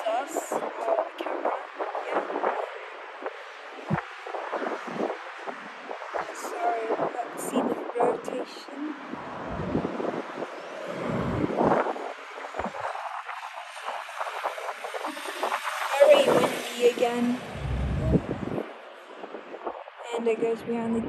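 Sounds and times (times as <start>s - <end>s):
wind buffeting microphone: 0.0s - 21.0s
deep rumbling surges: 9.2s - 10.1s, 10.8s - 13.4s, 17.1s - 18.8s.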